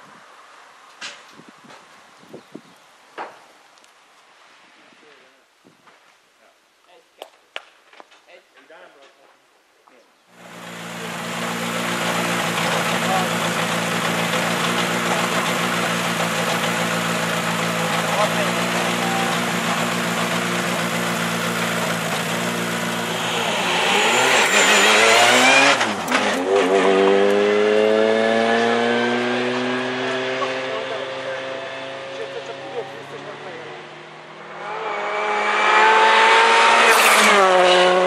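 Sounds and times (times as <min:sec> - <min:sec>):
car engine accelerating: 0:10.4 - 0:38.0.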